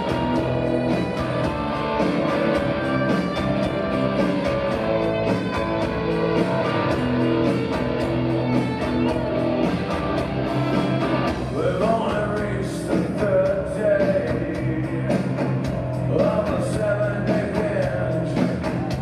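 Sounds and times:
rock band playing live: 0.0s - 19.0s
man singing: 11.5s - 18.9s.

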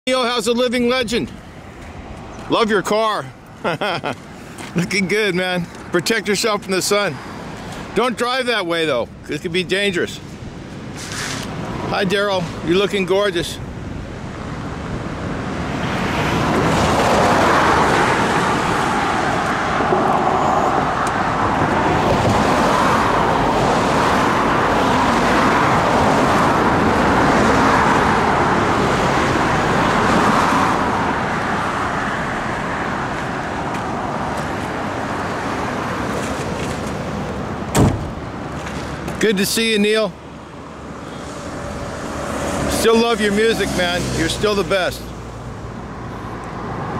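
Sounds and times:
highway traffic passing: 0.1s - 46.9s
sharp knock: 37.7s - 38.1s.

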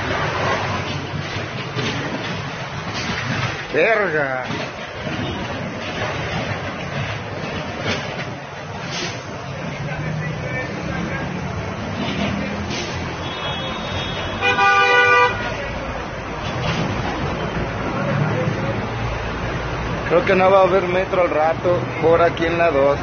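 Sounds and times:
road traffic passing: 0.0s - 23.0s
car horn: 13.2s - 15.6s.

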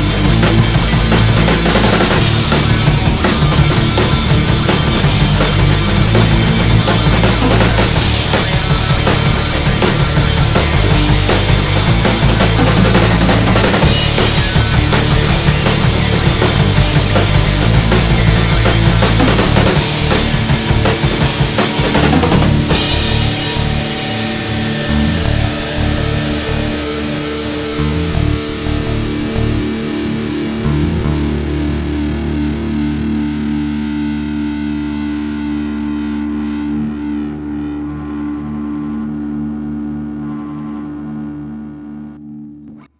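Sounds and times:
drum kit playing hard: 0.0s - 30.2s
distorted electric guitar chord: 0.0s - 42.9s.

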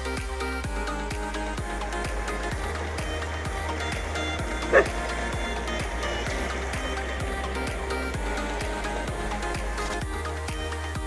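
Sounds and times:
electronic dance music: 0.0s - 11.0s
dog bark: 4.7s - 5.0s.

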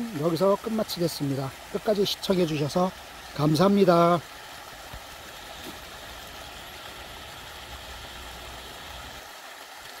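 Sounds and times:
stream running over rocks: 0.0s - 10.0s.

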